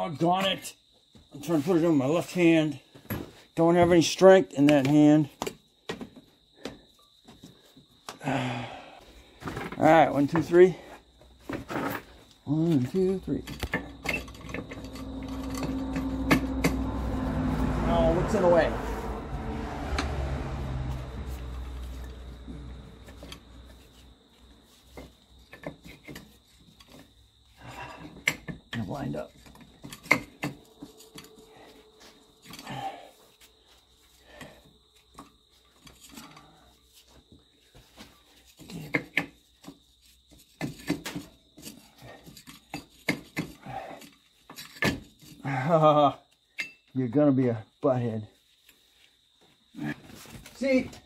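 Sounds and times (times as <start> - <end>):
person grunting: 8.2 - 9.0
metallic clicks and scrapes: 13.4 - 16.8
low hum: 14.3 - 23.4.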